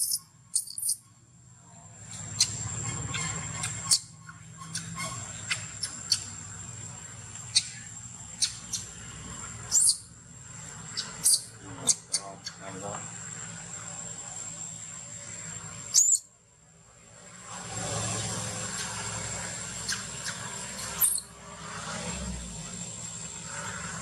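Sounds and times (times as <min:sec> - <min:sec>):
baby monkey squeaking: 0:00.0 - 0:01.0, 0:02.3 - 0:06.3, 0:07.5 - 0:07.8, 0:08.4 - 0:08.9, 0:09.7 - 0:10.1, 0:10.9 - 0:12.6, 0:15.9 - 0:16.2, 0:19.9 - 0:21.3
low background hum: 0:00.0 - 0:24.0.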